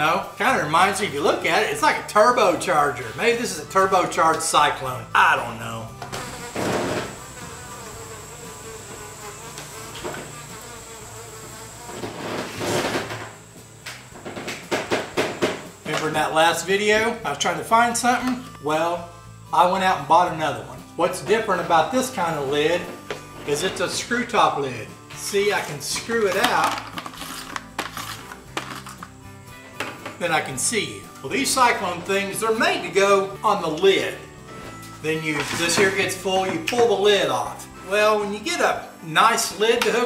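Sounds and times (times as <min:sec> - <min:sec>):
background music: 0:00.0 - 0:40.0
hornet buzzing: 0:02.2 - 0:33.4
sharp knocks: 0:14.2 - 0:15.7.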